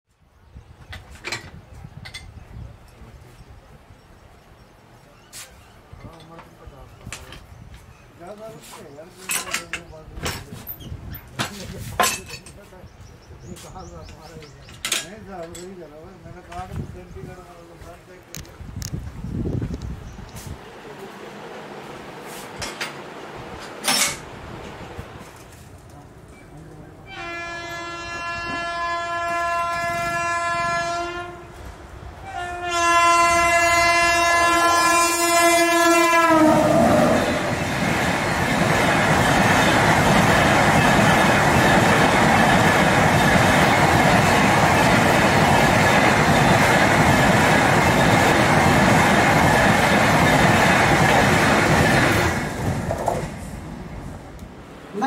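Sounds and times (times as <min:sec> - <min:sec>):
train rumble: 0:00.4 - 0:55.0
locomotive horn blasts: 0:27.0 - 0:37.2
train wheels clacking on rails: 0:37.0 - 0:53.6.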